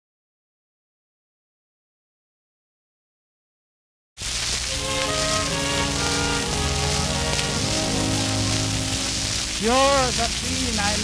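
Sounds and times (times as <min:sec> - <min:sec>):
record surface hiss and crackle: 0:04.2 - 0:11.0
orchestral song introduction: 0:04.7 - 0:11.0.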